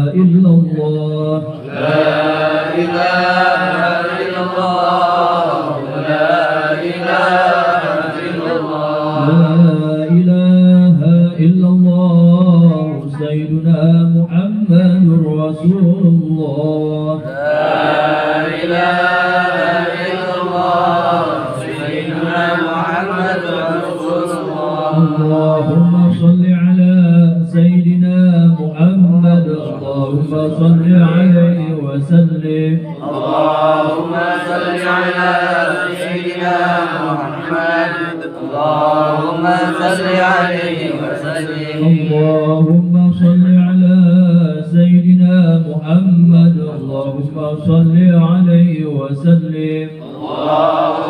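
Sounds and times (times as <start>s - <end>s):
men chanting through loudspeaker: 0.0s - 51.0s.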